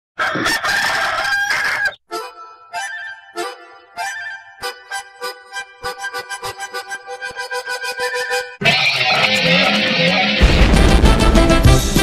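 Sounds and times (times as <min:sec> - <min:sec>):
rooster crowing: 0:00.2 - 0:02.0.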